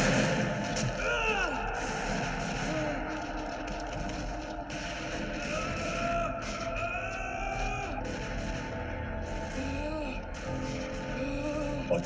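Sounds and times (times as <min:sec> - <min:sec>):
film soundtrack music: 0:00.0 - 0:12.0.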